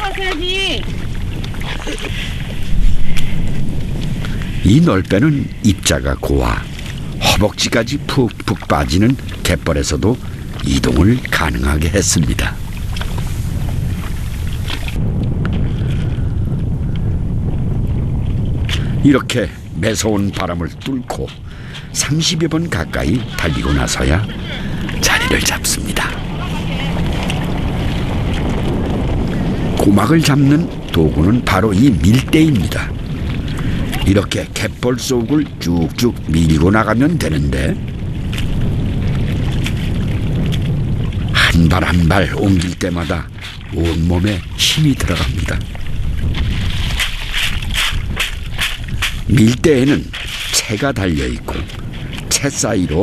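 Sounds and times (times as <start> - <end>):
wind buffeting microphone: 0.0 - 53.0
sledge hissing over wet mud: 12.2 - 15.0
cockle harvester working in mud: 42.3 - 45.6, 46.4 - 53.0
rake scraping: 46.4 - 52.1.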